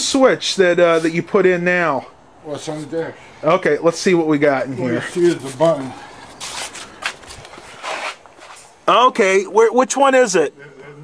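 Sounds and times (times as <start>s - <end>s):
rustling handling noise: 5.1s - 8.8s.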